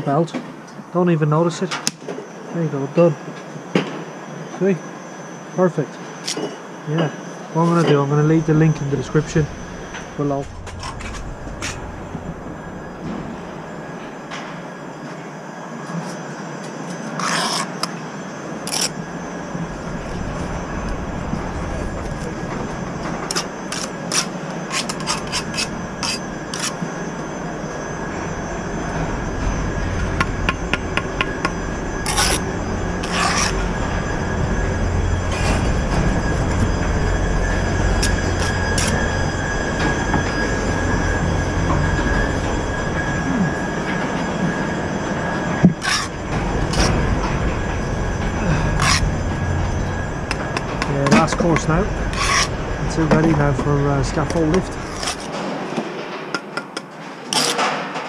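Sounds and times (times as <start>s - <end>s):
low rumble: 8.4s - 14.1s, 19.0s - 23.8s, 25.6s - 55.0s.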